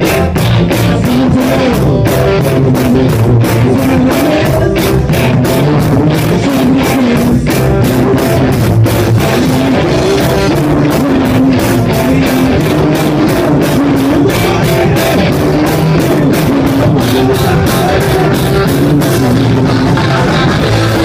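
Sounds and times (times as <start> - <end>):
drum kit: 0.0 - 21.0
electric guitar: 0.0 - 21.0.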